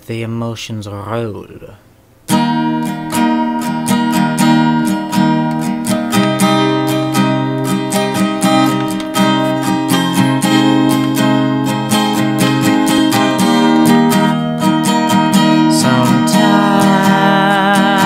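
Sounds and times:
acoustic guitar strumming: 2.1s - 18.0s.

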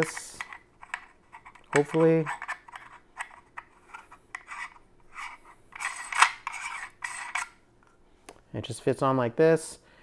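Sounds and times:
metal threads scraping: 0.0s - 7.6s.

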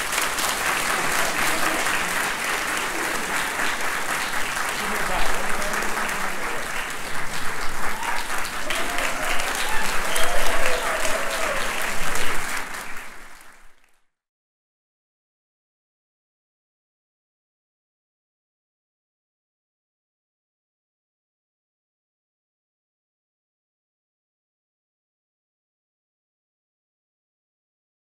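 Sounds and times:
audience applauding: 0.0s - 14.0s.

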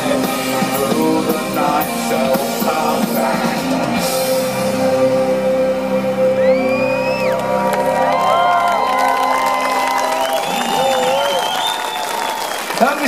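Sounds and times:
live synthpop band held note: 0.0s - 13.0s
crowd cheering and whooping: 6.2s - 13.0s.

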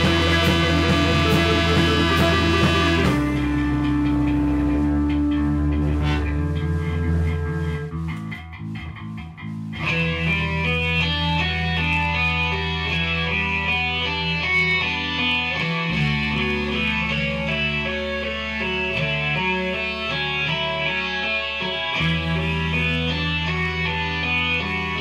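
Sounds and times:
rock band playing: 0.0s - 25.0s.

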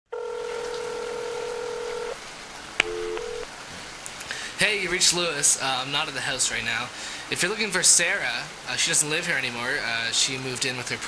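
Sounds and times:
steady telephone tone: 0.1s - 2.2s, 2.8s - 3.5s
telephone line click: 2.8s - 3.5s.

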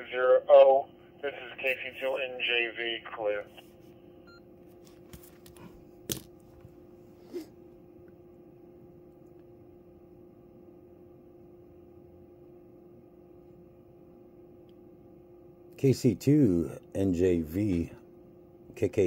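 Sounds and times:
faint electrical hum: 0.0s - 19.0s.

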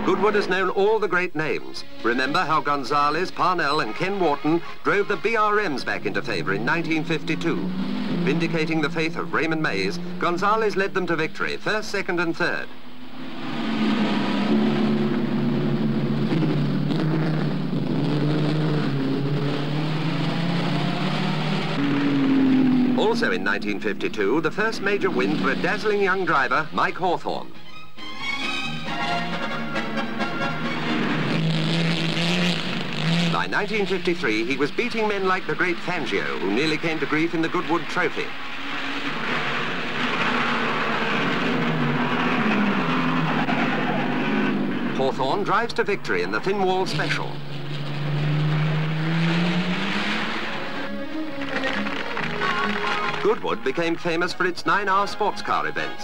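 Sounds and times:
hissy old film soundtrack: 0.0s - 7.6s, 23.0s - 31.4s, 33.4s - 48.1s, 49.8s - 56.0s
racing car engines: 0.0s - 56.0s.

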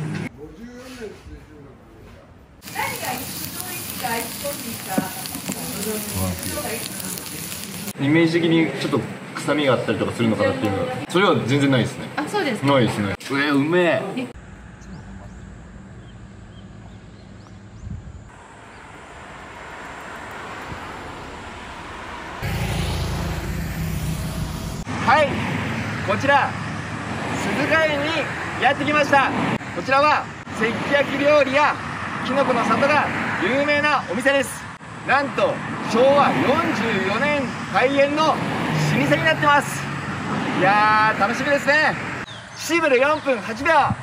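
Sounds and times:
meat sizzling on hot stone: 2.6s - 8.0s
car passing by: 18.3s - 42.3s
loud rush with low rumble: 20.4s - 26.4s.

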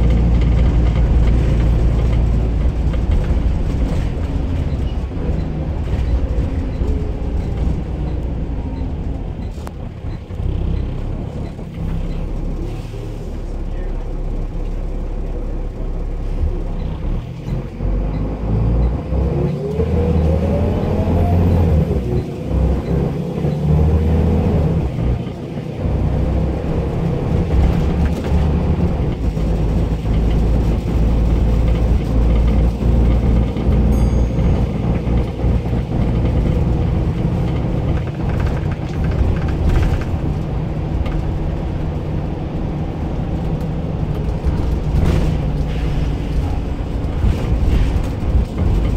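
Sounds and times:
bus engine rumble: 0.0s - 48.9s.

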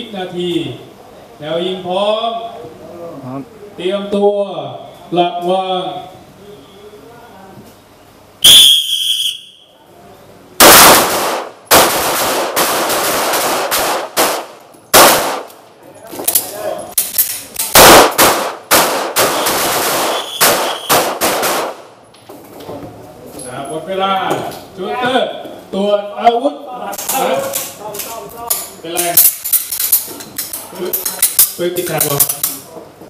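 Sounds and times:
pistol shots echoing: 10.6s - 15.6s, 17.6s - 21.9s.

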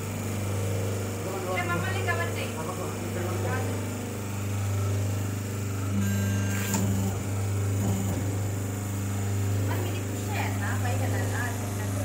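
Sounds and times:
electric motor humming: 0.0s - 12.0s
higher tone: 5.8s - 8.6s.

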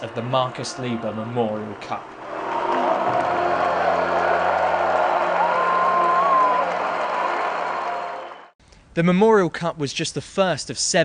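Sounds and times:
music: 0.0s - 8.5s
cheering and applause: 0.0s - 8.6s.

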